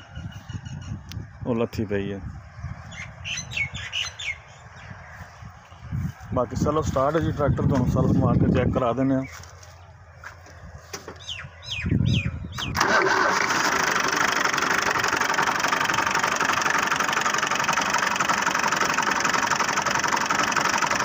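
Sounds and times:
diesel engine starter cranking: 12.6 - 21.0
tractor engine idling: 12.7 - 21.0.

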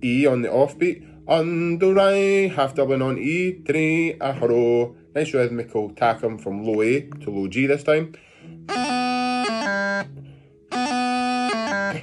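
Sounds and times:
bagpipe practice chanter melody: 8.4 - 12.0.

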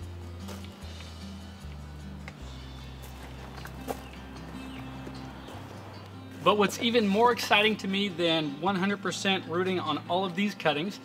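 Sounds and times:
music with sustained low notes: 0.0 - 11.0.

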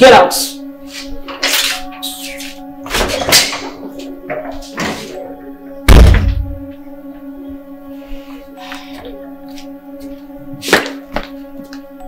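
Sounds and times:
background music: 0.0 - 12.0
door slamming shut: 5.9 - 6.6.

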